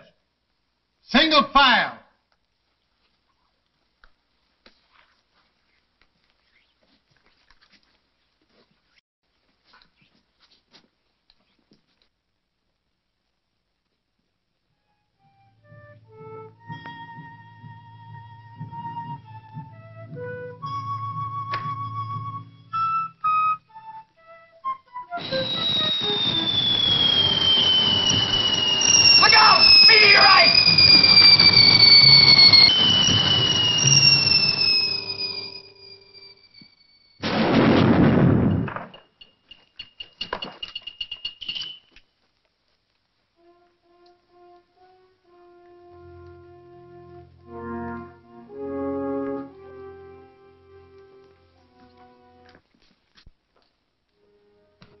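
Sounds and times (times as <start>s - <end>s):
held musical notes: 15.2s - 36.9s, 43.4s - 52.6s
falling whistling tones: 24.6s - 37.2s
faint high tones: 25.2s - 37.2s
loud burst of noise: 25.2s - 39.0s.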